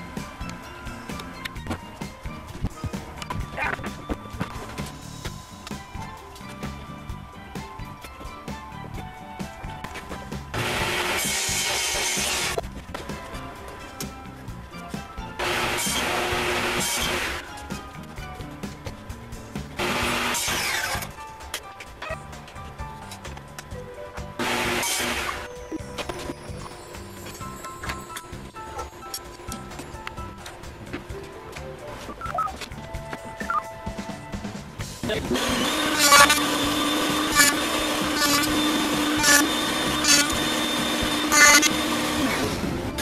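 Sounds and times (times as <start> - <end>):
background music: 0.0 - 43.0
table saw cutting plywood: 10.6 - 12.6, 15.4 - 17.4, 19.8 - 21.1, 24.4 - 25.5, 35.1 - 43.0.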